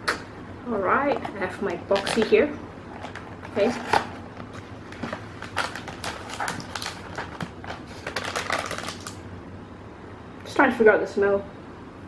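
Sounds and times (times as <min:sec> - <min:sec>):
cardboard and paper crackling: 0:03.0 - 0:09.2.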